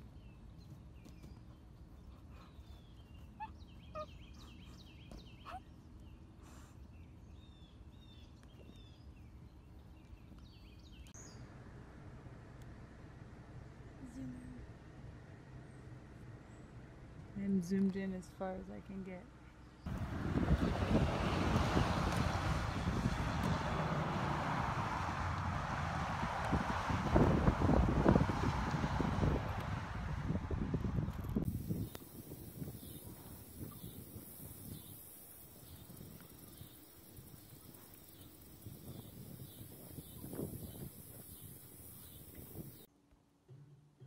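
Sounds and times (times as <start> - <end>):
wind rumbling on microphone: 19.9 - 42.9.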